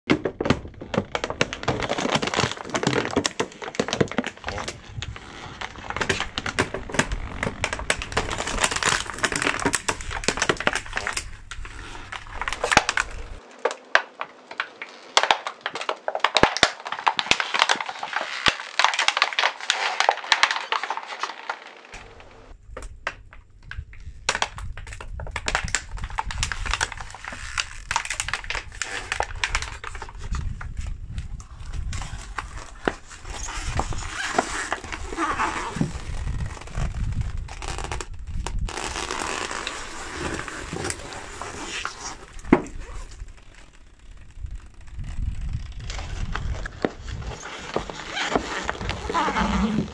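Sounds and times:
plastic packaging crackling: 0.2s - 49.9s.

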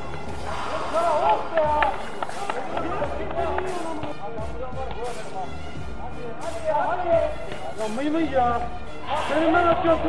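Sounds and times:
players shouting: 0.3s - 4.2s, 9.0s - 10.0s.

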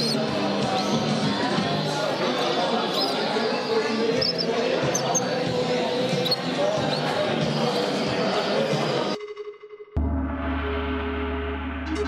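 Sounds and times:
songbird chirps: 0.0s - 1.1s
people talking: 0.0s - 9.2s.

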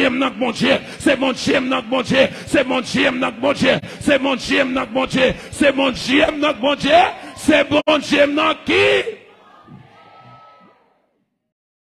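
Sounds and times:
loud shouting: 6.8s - 11.0s.

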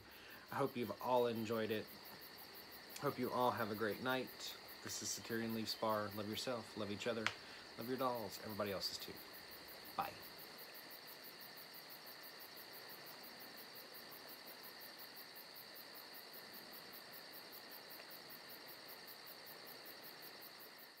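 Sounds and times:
cricket chirring: 0.0s - 21.0s.

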